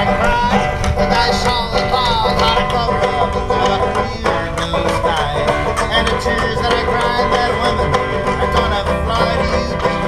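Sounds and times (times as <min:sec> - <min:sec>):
banjo picking: 0:00.0 - 0:10.0
harmonica: 0:00.0 - 0:10.0
washboard: 0:00.0 - 0:10.0.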